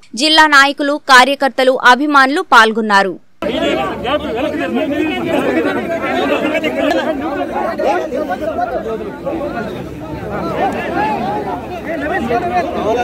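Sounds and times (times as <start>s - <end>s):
crowd babble: 3.4s - 13.0s.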